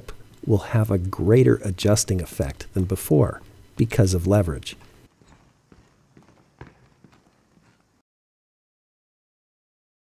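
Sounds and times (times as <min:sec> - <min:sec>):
faint footsteps: 0:01.9 - 0:08.0.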